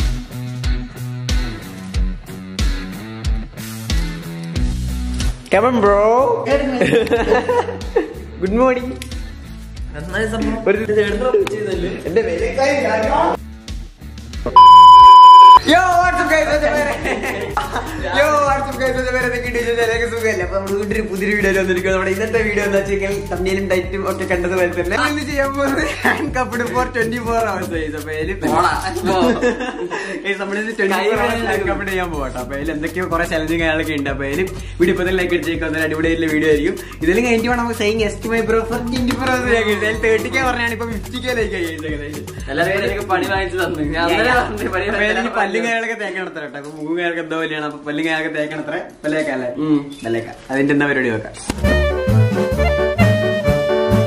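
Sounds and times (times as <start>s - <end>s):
censor bleep tone: 14.6s - 15.6s.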